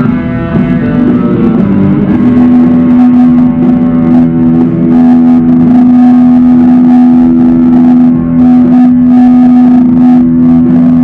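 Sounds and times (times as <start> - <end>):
distorted electric guitar note: 0.0 - 11.0.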